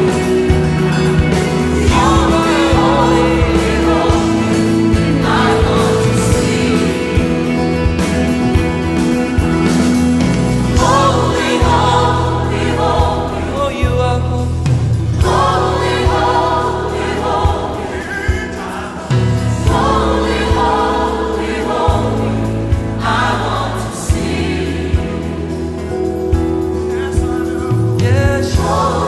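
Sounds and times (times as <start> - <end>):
sustained bass line: 0.0 - 26.8
choir singing worship song: 0.0 - 27.2, 27.8 - 29.0.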